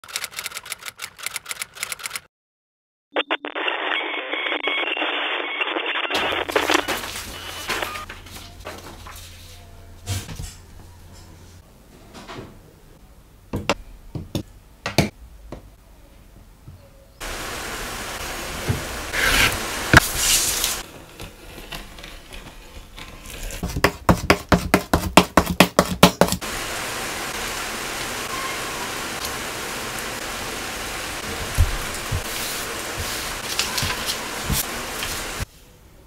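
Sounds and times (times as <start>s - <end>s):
typewriter keys clacking: 0.0s - 2.3s
steady hiss: 17.2s - 20.8s, 26.4s - 35.5s
paper scraping over cutting mat: 19.1s - 23.8s, 32.1s - 35.3s.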